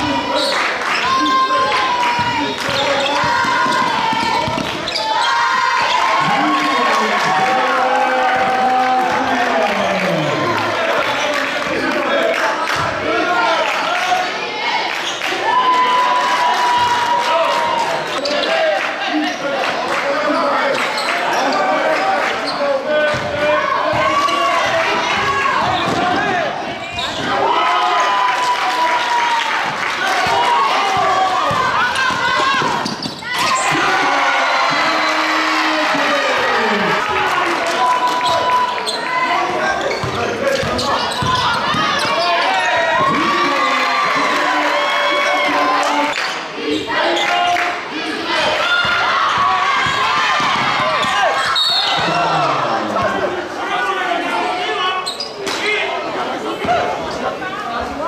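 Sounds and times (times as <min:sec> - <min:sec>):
basketball bouncing on wooden court: 0:02.1 - 0:05.0, 0:39.8 - 0:43.2, 0:48.7 - 0:51.2.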